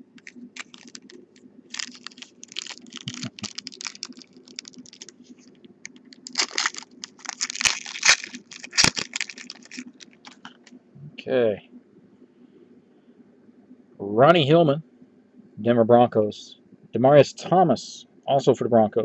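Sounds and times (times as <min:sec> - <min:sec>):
faint low hum: 0:00.0 - 0:19.0
foil wrapper crinkling and tearing: 0:00.2 - 0:10.6.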